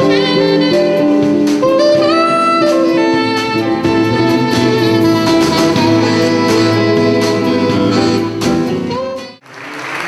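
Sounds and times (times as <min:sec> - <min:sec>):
light drums: 0:00.0 - 0:09.2
accordion chords: 0:00.0 - 0:09.4
bass line: 0:00.0 - 0:09.4
soprano saxophone melody: 0:00.0 - 0:09.4.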